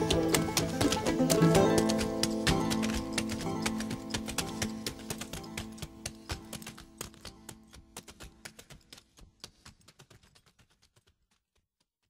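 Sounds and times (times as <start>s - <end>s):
quick irregular clicking taps: 0.0s - 11.6s.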